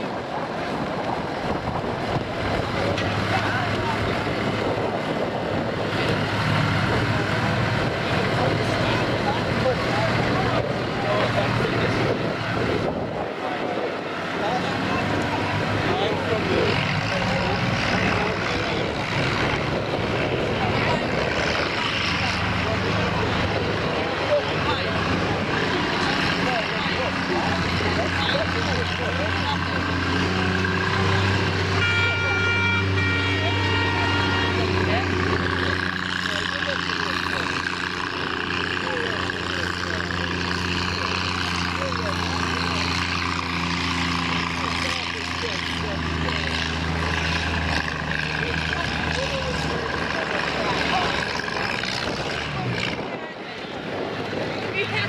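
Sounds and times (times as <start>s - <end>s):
tractor engine running: 0.0s - 55.0s.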